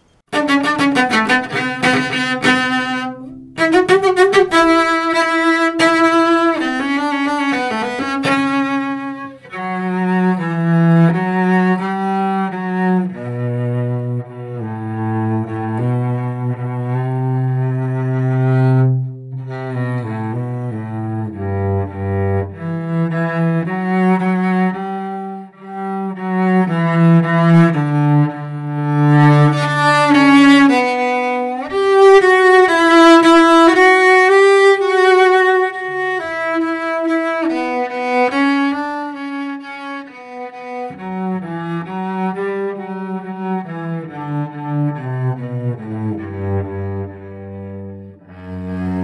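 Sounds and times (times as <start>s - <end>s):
bowed cello: 0.0s - 49.0s.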